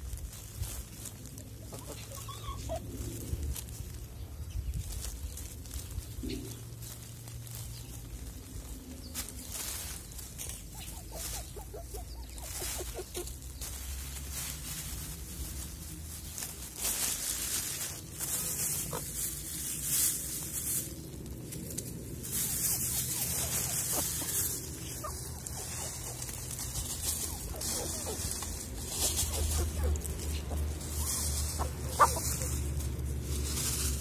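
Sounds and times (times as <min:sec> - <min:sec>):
hens pecking: 0:00.0 - 0:34.0
leaves rustling and crackling: 0:00.0 - 0:34.0.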